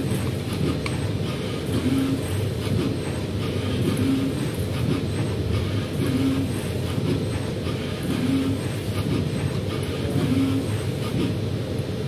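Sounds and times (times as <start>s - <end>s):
robot arm drives running: 0.0s - 11.5s.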